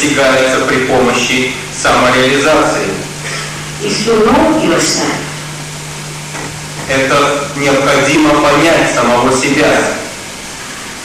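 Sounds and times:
recording hiss: 0:00.0 - 0:11.0
steady low hum: 0:00.0 - 0:11.0
person speaking: 0:00.5 - 0:05.5.

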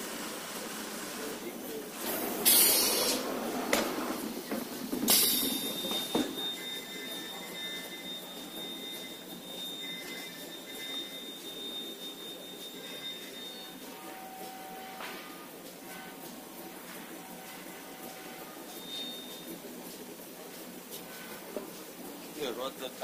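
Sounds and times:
loud hissing bursts: 0:02.0 - 0:03.3.

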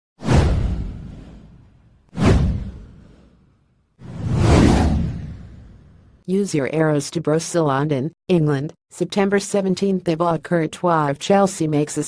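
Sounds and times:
whoosh sound effects: 0:04.0 - 0:06.0.

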